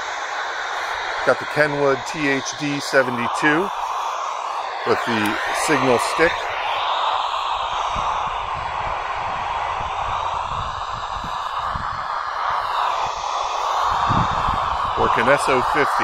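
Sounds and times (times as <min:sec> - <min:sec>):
radio static hiss: 0:00.0 - 0:16.0.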